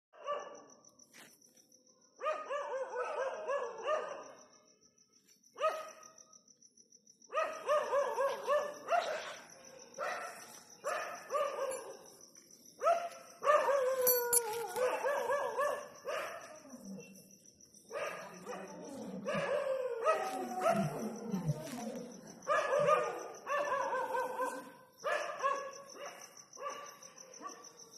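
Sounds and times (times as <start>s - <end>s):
dog barking: 0.1s - 0.7s, 2.2s - 4.5s, 5.6s - 6.2s, 7.3s - 12.1s, 12.8s - 17.0s, 17.9s - 21.0s, 22.4s - 27.8s.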